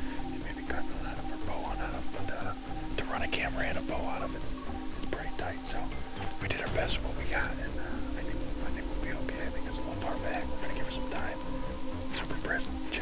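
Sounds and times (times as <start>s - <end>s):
people whispering: 0.0s - 13.0s
soft background music: 0.0s - 13.0s.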